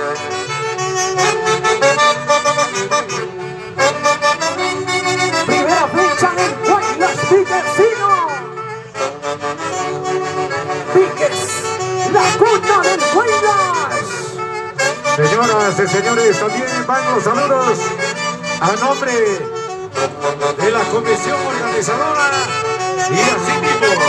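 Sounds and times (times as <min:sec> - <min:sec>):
folk orchestra with saxophones: 0:00.0 - 0:24.0.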